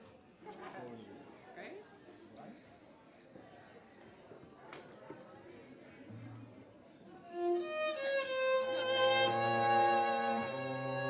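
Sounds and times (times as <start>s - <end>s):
cello holding low note: 7.3s - 11.0s
violin playing: 7.3s - 11.0s.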